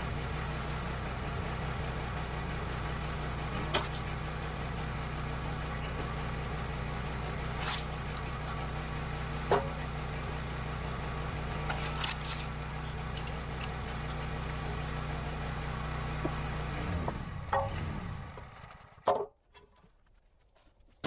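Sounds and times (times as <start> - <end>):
small gas engine running: 0.0 - 19.1
wood cracking and knocking: 11.6 - 14.4.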